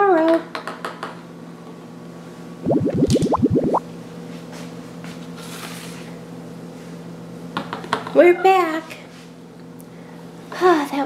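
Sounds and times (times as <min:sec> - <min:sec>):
rising cartoon bloops: 0:02.6 - 0:03.8.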